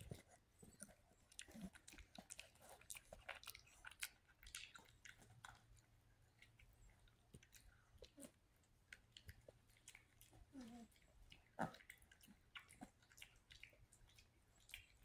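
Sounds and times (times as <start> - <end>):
dog crunching a treat: 0.0 - 6.6.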